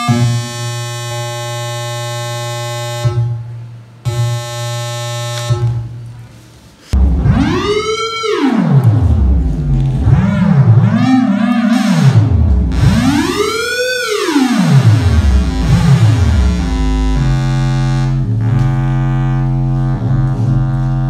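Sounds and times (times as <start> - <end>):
theremin tone gliding in pitch: 7.0 - 21.0.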